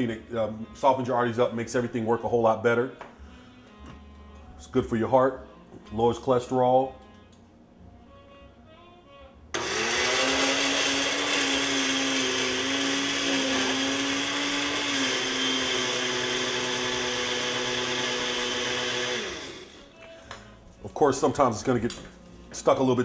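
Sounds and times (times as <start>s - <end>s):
countertop blender running: 9.6s - 19.9s.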